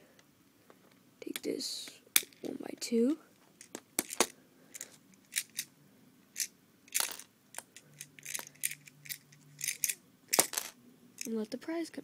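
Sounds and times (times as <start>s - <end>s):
plastic bricks clicking: 6.4s - 11.3s.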